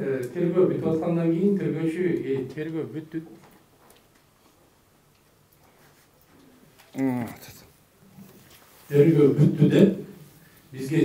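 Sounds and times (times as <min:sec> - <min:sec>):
man speaking into microphone: 0:00.0 - 0:03.4, 0:08.9 - 0:11.0.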